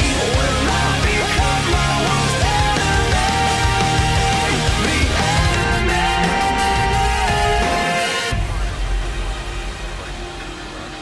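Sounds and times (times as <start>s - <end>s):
low rumble: 8.3s - 11.0s.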